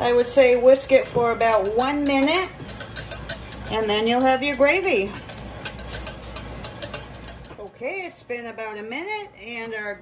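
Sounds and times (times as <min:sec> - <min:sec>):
whisk clicking against saucepan: 0:00.0 - 0:07.6
steady low hum: 0:00.0 - 0:10.0.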